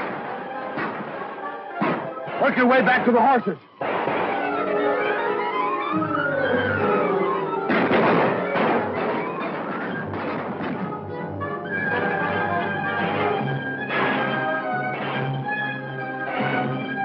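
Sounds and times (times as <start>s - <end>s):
dramatic orchestral music: 0.0s - 17.0s
sudden loud bang: 1.8s - 2.4s, 7.7s - 11.0s, 13.9s - 15.4s.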